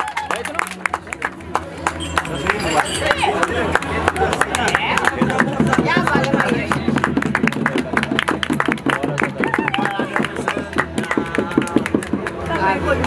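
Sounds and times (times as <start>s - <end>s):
people clapping a steady beat: 0.0s - 13.0s.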